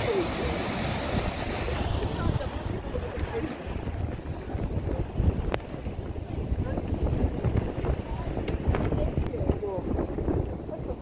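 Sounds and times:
waves breaking on rocks: 0.0s - 10.6s
wind buffeting microphone: 0.0s - 11.0s.

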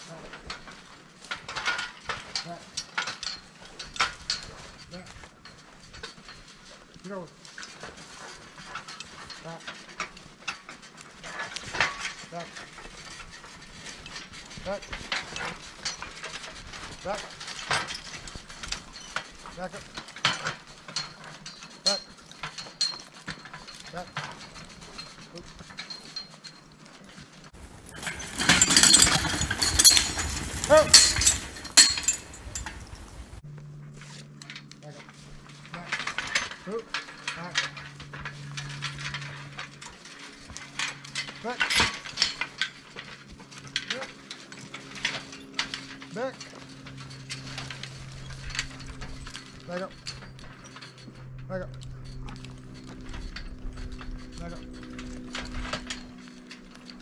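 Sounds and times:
harness and cart clinking: 0.0s - 33.4s, 34.3s - 57.0s
twigs and brush crackling: 27.2s - 33.4s.

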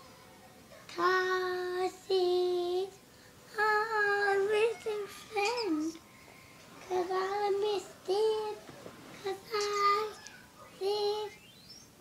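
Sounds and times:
boy singing unaccompanied: 0.9s - 6.0s, 6.8s - 11.5s.

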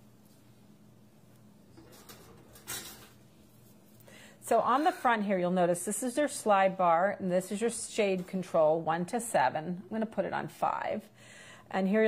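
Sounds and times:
bread rustling: 1.9s - 4.1s.

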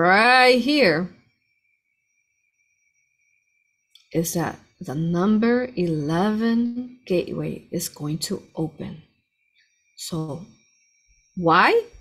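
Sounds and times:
woman speaking: 0.0s - 1.2s, 4.0s - 9.1s, 10.0s - 10.6s, 11.4s - 12.0s
faint steady high tone: 0.0s - 12.0s.

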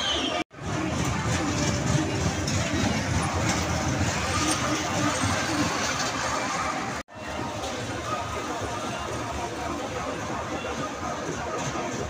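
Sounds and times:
crowd voices: 0.0s - 12.0s
ride cars rumbling on rails: 0.1s - 12.0s.

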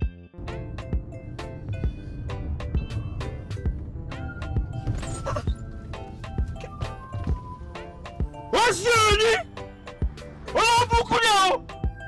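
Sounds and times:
background music with synth tones: 0.0s - 12.0s.

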